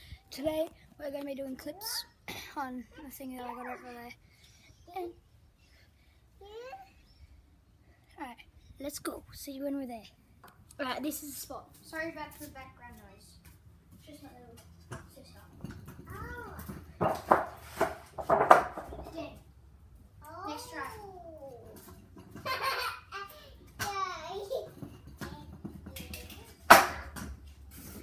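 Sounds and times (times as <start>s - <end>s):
young child babbling: 6.4s - 7.0s
sharp knocks: 17.0s - 19.0s.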